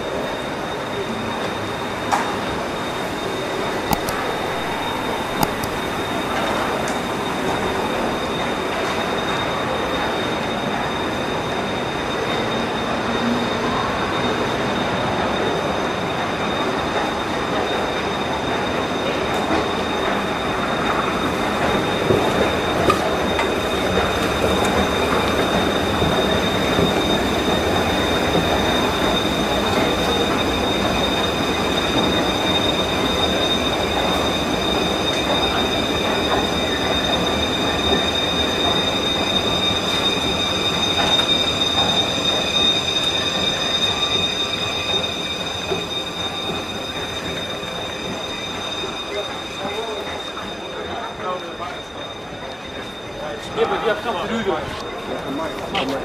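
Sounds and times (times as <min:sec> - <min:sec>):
high-pitched wheel squeal: 0:00.0 - 0:56.0
train rumbling on rails: 0:00.0 - 0:56.0.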